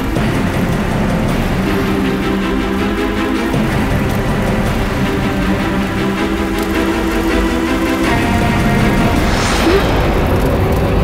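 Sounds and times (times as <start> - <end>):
deep rumble: 0.0 - 11.0
dramatic sustained score tones: 0.0 - 11.0.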